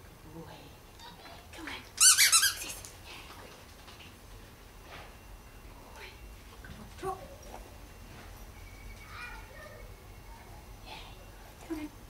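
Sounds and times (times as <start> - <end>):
squeaky toy ball squeaking: 2.0 - 2.6.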